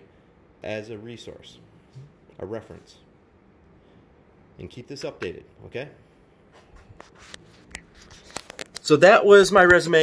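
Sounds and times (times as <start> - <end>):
camera handling rubbing: 6.6 - 8.8.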